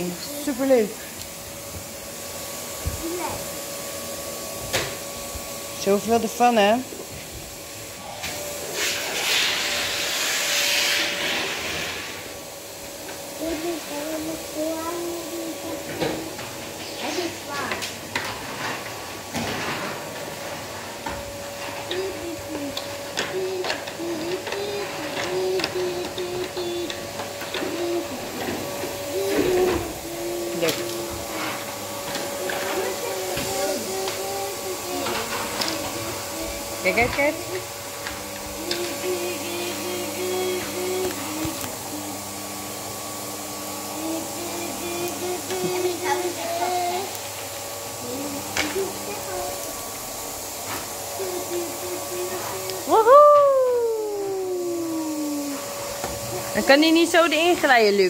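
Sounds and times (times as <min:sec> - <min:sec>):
young child humming and babbling: 0:03.0 - 0:03.4, 0:13.4 - 0:17.8, 0:21.8 - 0:31.6, 0:32.4 - 0:36.8, 0:38.6 - 0:42.3, 0:43.9 - 0:47.2, 0:48.0 - 0:49.7, 0:51.1 - 0:55.7.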